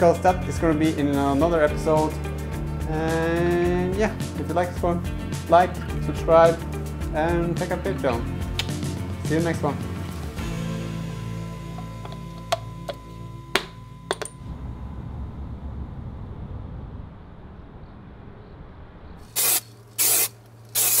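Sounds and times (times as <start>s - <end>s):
background music: 0.0s - 14.9s
short loud hissing bursts: 19.2s - 21.0s.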